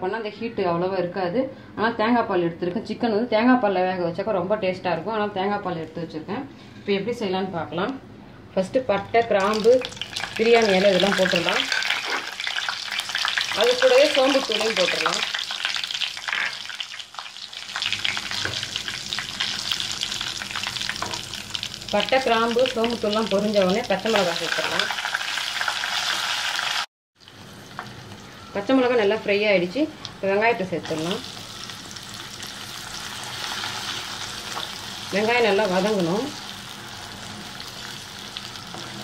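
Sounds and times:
spice seeds sizzling in hot oil: 9.4s - 39.0s.

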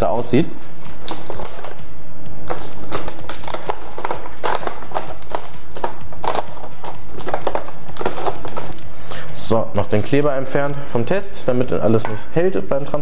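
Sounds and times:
tape peeling off bottle: 0.8s - 9.2s
plastic bottles clicking and tapping: 2.5s - 8.9s.

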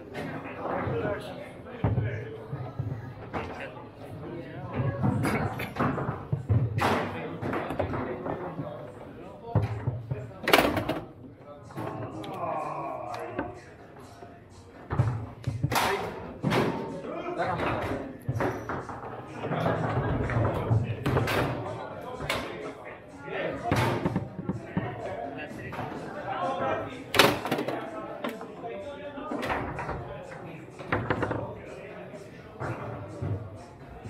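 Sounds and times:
voices in a large hall: 0.0s - 34.0s.

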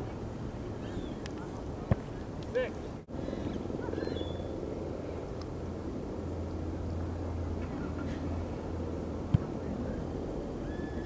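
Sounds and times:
low outdoor rumble: 0.0s - 11.0s
rising and falling call: 10.6s - 11.0s.

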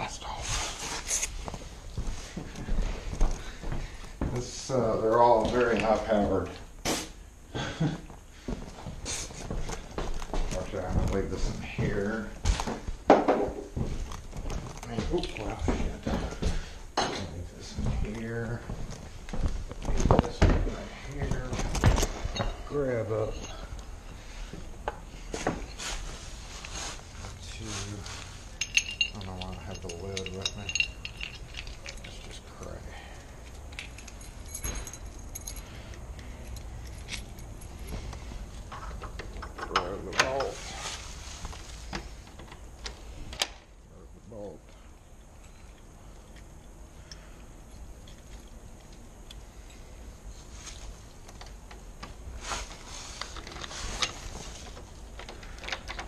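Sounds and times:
keys jangling: 28.6s - 32.7s, 33.4s - 39.9s.

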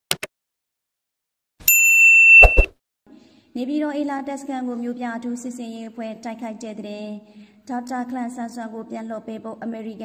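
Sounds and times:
notification bell ding: 1.7s - 2.7s.

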